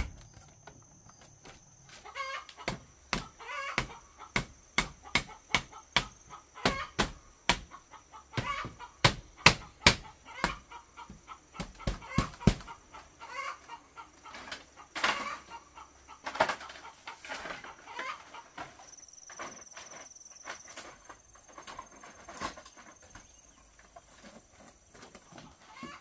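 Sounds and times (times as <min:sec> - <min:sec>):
chickens clucking: 0:00.0 - 0:26.0
sharp knocks on bamboo frame: 0:02.6 - 0:07.8, 0:08.4 - 0:10.6, 0:11.6 - 0:12.8.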